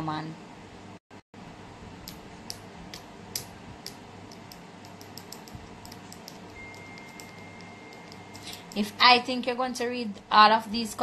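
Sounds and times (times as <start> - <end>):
keyboard typing clicks: 4.3 - 8.9
thin high-pitched tone: 6.5 - 8.6.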